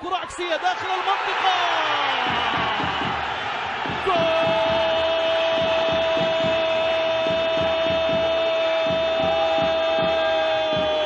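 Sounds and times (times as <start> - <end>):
fast low thumping beat: 2.1 - 11.0
commentator shouting goal call: 4.0 - 11.0.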